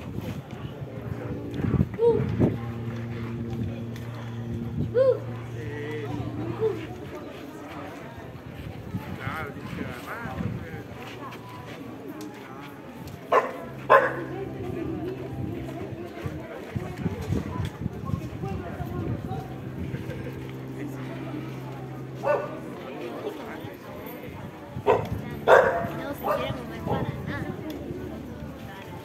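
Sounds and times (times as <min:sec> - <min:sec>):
murmur of crowd voices: 0:00.0 - 0:29.0
dog barking: 0:13.3 - 0:14.2, 0:22.2 - 0:22.5, 0:24.9 - 0:27.0.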